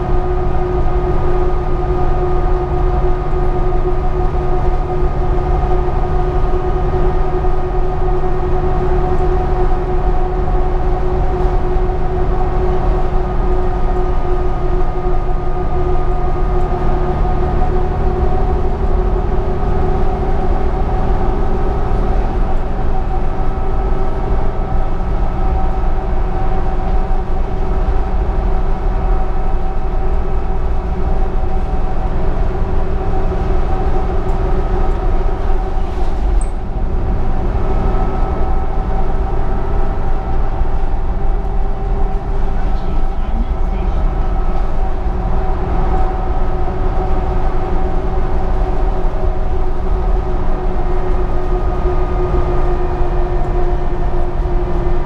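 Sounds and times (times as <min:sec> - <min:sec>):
bus engine drone: 0:00.0 - 0:55.0.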